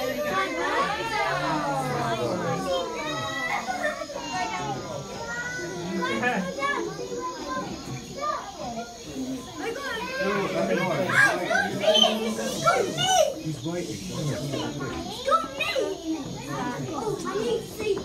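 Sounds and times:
children talking and calling out: 0.0 - 18.0.

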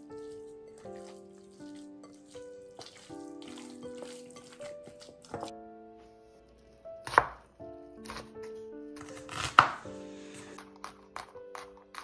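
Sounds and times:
knife chopping on wooden board: 7.0 - 7.4, 9.0 - 9.8.

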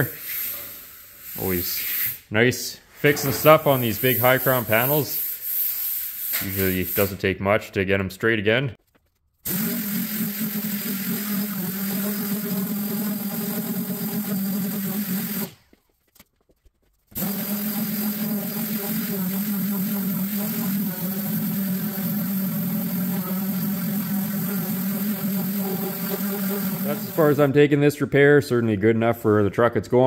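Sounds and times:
sander on sheet steel: 9.5 - 15.6, 17.2 - 27.5.

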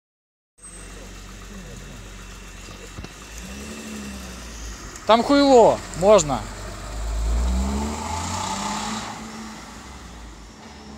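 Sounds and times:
car engine idling: 0.6 - 10.9.

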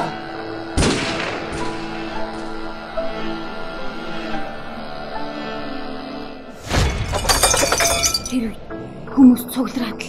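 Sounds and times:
glass shattering crash: 6.7 - 8.5
clinks and rattles of debris: 6.8 - 8.6.

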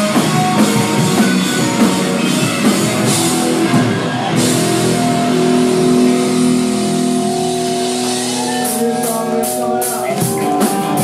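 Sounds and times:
distorted guitars and bass chord: 0.0 - 11.0.

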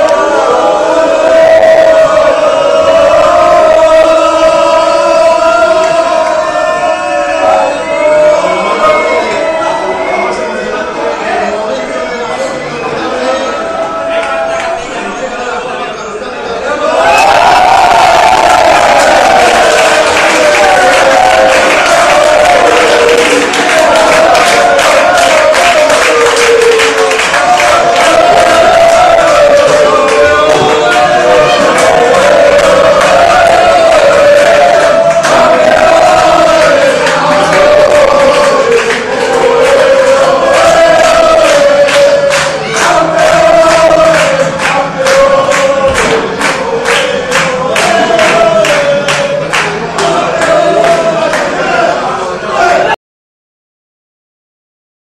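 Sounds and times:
crowd singing together: 0.0 - 53.0
rhythmic claps or drum strokes: 18.4 - 51.6.

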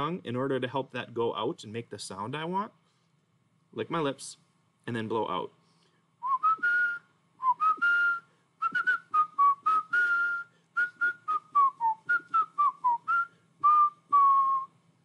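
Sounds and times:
man whistling: 6.2 - 14.8.

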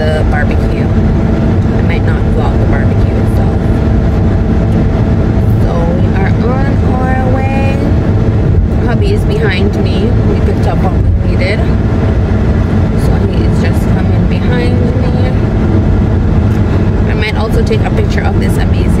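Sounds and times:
car cabin road rumble: 0.0 - 19.0.

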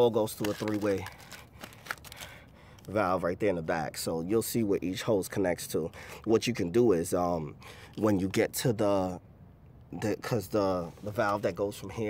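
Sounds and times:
faint handling noise: 0.0 - 3.0.

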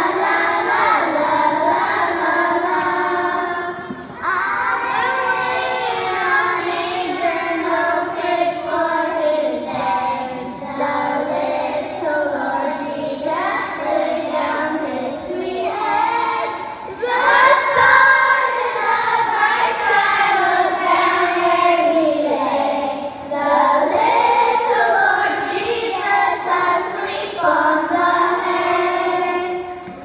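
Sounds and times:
children's choir singing: 0.0 - 30.0.

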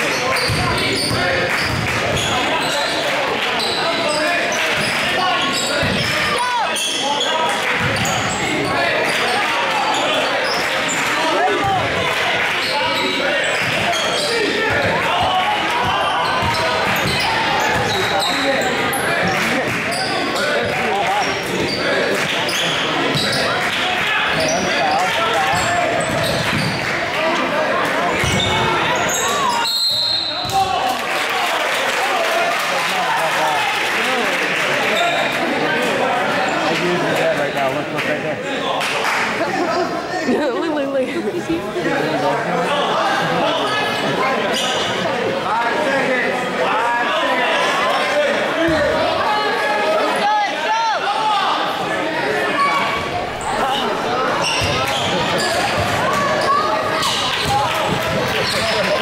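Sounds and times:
spectator chatter and calls: 0.0 - 59.0
high whistle: 29.6 - 30.4.

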